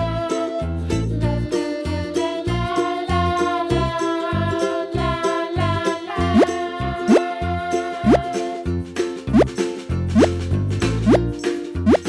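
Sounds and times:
upbeat children's music: 0.0s - 12.0s
cartoon bloop rising in pitch: 6.2s - 6.5s, 8.0s - 8.2s.

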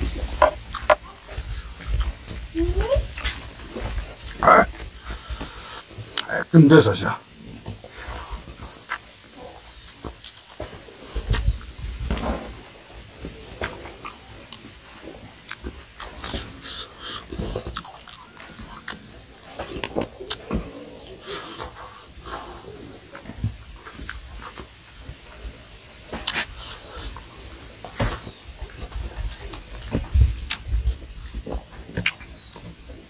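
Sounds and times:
man chewing with wet smacks: 0.0s - 6.4s, 7.5s - 33.0s.

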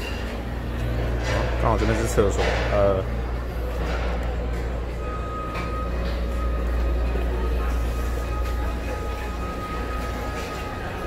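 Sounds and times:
restaurant room noise: 0.0s - 11.0s.

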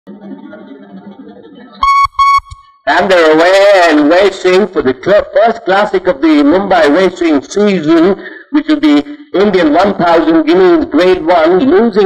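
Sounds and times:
faint background murmur: 0.1s - 1.8s.

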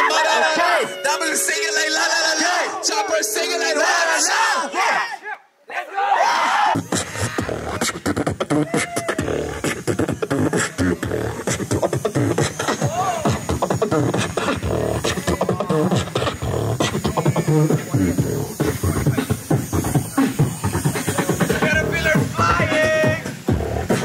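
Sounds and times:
person beatboxing: 6.7s - 24.0s.

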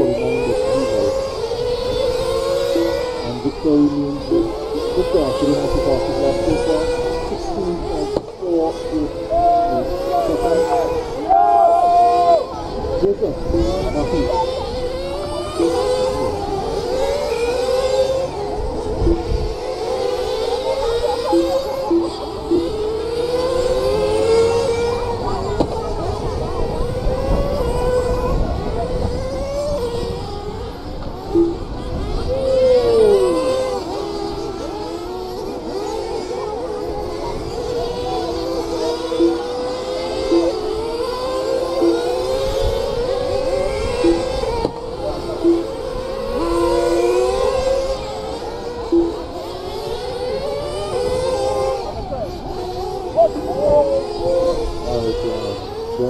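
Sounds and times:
model race car motors whining: 0.0s - 56.0s.

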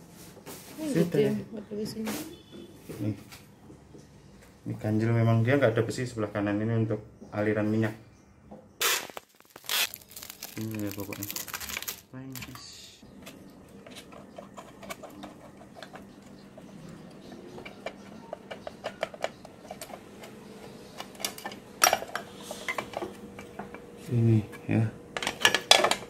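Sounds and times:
packing tape pulled and torn: 8.8s - 12.6s
plastic bag crinkling: 8.8s - 12.8s.

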